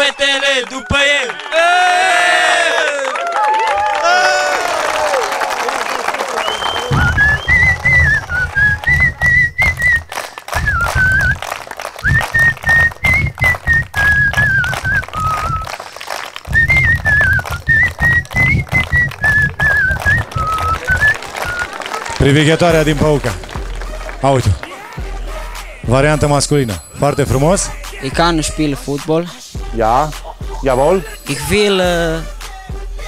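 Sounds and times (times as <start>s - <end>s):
hand claps: 2.7s - 25.8s
man whistling a tune: 6.4s - 15.8s, 16.5s - 21.8s
low beat: 6.9s - 11.4s, 12.0s - 15.7s, 16.5s - 21.2s, 22.7s - 33.0s.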